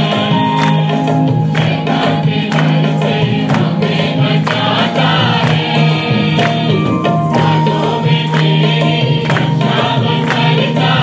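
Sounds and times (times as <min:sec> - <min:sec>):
choir singing worship song: 0:00.0 - 0:11.0.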